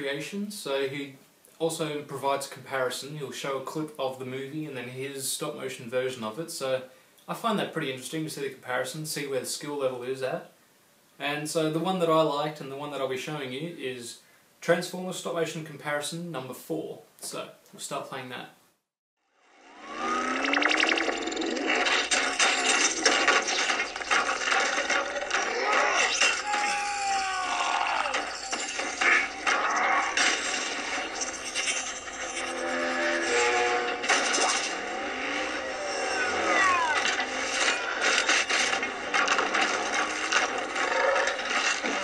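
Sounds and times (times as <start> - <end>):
sweeping mechanical effects: 19.4 - 26.2, 28.2 - 42.0
crashes and metal impacts: 20.0 - 42.0.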